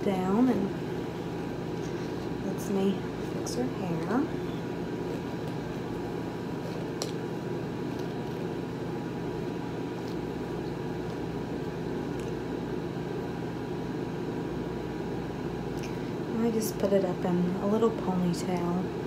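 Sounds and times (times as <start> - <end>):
steady mechanical hum: 0.0 - 19.0.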